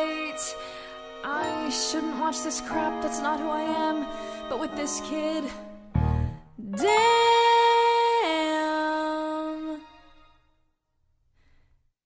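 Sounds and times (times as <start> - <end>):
faint soft breath: 11.3 - 11.9.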